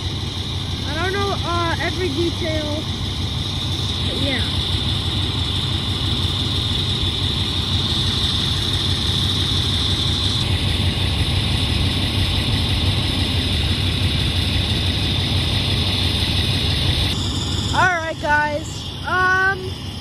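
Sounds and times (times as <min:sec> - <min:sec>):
diesel engines idling: 0:00.0 - 0:20.0.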